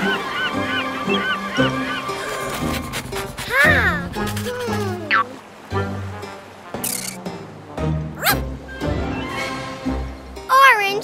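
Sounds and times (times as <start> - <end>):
background music: 0.0 - 11.0
cartoon dog yip: 8.2 - 8.4.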